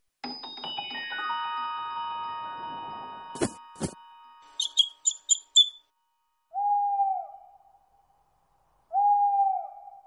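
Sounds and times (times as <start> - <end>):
high bird chirps: 4.6 - 5.9
cartoon owl hooting: 8.9 - 10.0.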